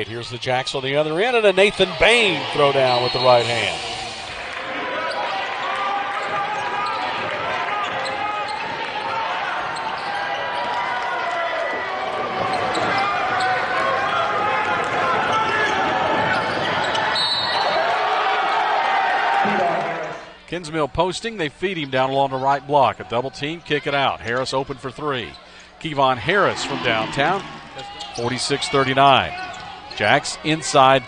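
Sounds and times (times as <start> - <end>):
crowd and player voices: 0.0 - 31.0.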